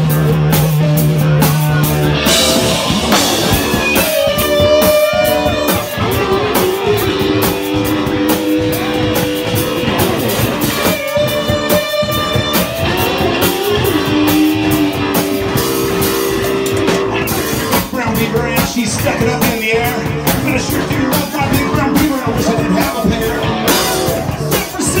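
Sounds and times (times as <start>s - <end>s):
electric guitar bending notes: 0.0s - 17.8s
bass guitar: 0.0s - 25.0s
drum kit: 0.0s - 25.0s.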